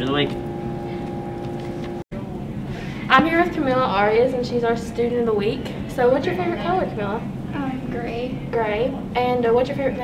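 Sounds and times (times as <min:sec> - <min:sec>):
room hum with even tones: 0:00.0 - 0:10.0.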